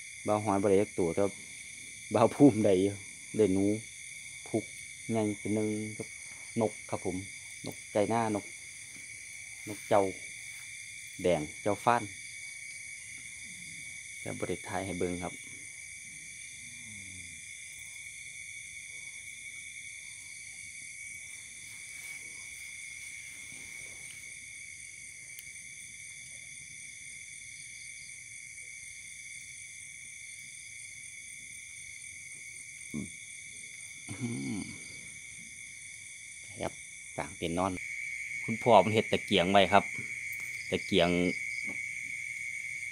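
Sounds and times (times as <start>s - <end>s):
crickets and insects chirping: 0.0s - 42.9s
man coughing: 34.1s - 34.8s.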